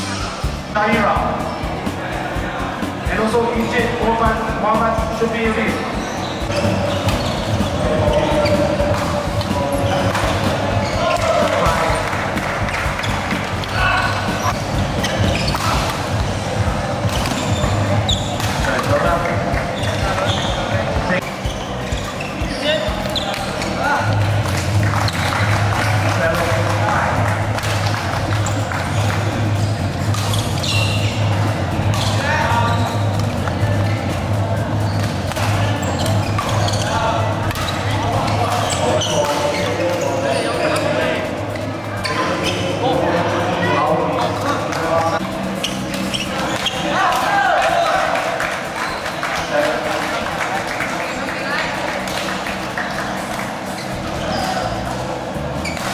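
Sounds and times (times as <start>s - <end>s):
spectators talking: 0.0s - 55.9s
shoes squeaking on court floor: 4.7s - 47.8s, 48.5s - 55.9s
rackets striking shuttlecock: 17.0s - 20.4s, 30.0s - 31.3s, 34.9s - 36.8s, 37.4s - 40.0s.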